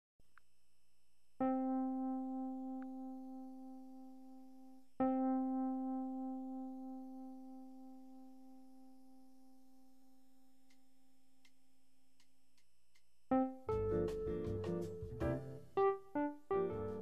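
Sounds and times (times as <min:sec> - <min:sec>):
electric piano notes: 0:13.3 - 0:17.0.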